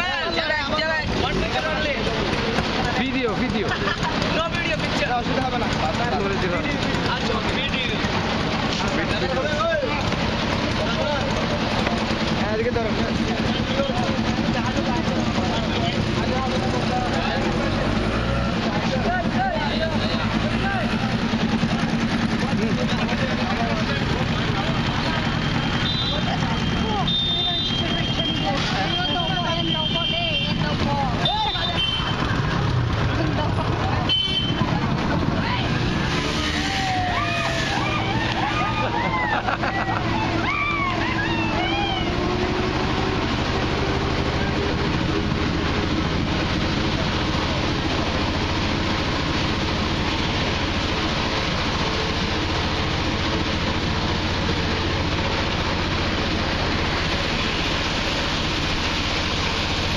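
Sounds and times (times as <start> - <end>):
people talking: 0.0 - 59.9
vehicle engine running: 0.0 - 59.9.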